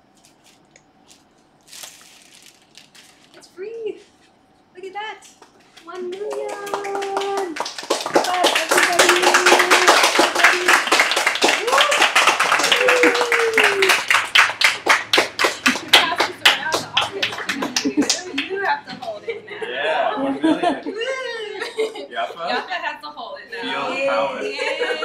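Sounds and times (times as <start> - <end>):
group clapping: 5.2 - 19.2
voices cheering: 5.9 - 21.6.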